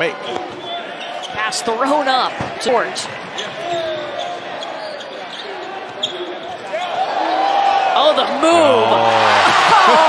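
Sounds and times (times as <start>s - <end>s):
arena crowd voices: 0.0s - 10.0s.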